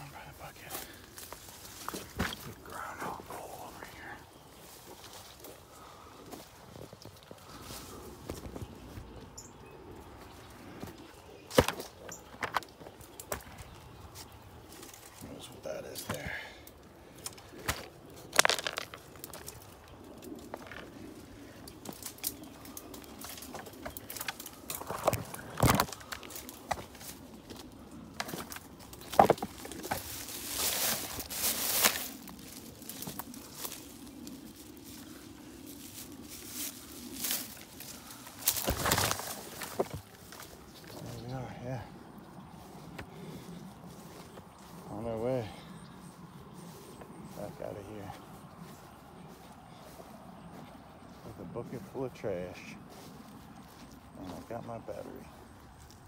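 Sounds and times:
twigs cracking: 0.0 - 44.9
brush rustling: 0.0 - 56.0
footsteps crunching through dry leaves: 0.2 - 9.3, 17.2 - 56.0.

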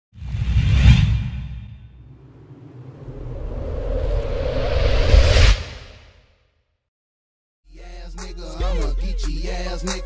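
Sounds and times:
whoosh: 0.2 - 6.7
deep rumble: 1.1 - 6.0.

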